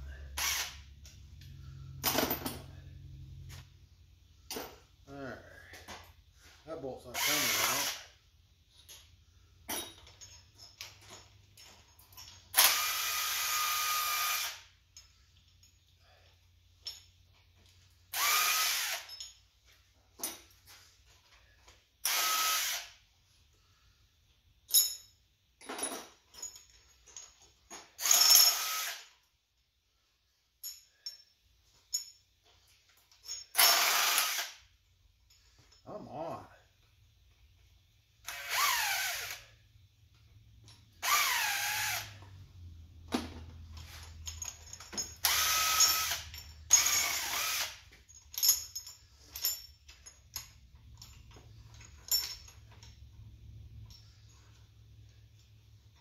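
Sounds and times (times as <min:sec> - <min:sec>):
air impact wrench bursts: 0:00.0 - 0:01.1, 0:07.1 - 0:08.2, 0:12.5 - 0:14.8, 0:18.1 - 0:19.1, 0:22.0 - 0:23.0, 0:28.0 - 0:29.2, 0:33.5 - 0:34.7, 0:38.2 - 0:39.6, 0:41.0 - 0:42.2, 0:45.2 - 0:47.9.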